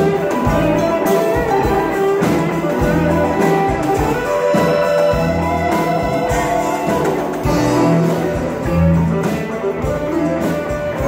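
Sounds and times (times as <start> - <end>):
amplified harmonica: 0.0 - 11.0
blues band playing: 0.0 - 11.0.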